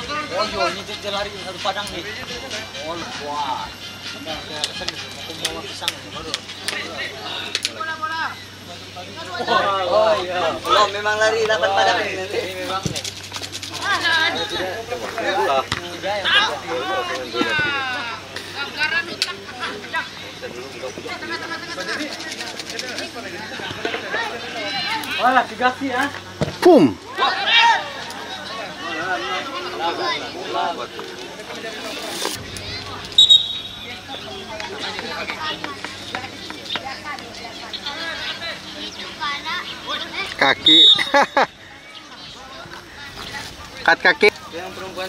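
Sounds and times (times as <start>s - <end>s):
people shouting outdoors: 0.0s - 12.6s, 13.7s - 22.1s, 23.2s - 31.9s, 32.7s - 43.1s
spectators talking: 0.0s - 45.0s
referee's whistle blast: 33.2s - 34.0s, 40.6s - 41.2s.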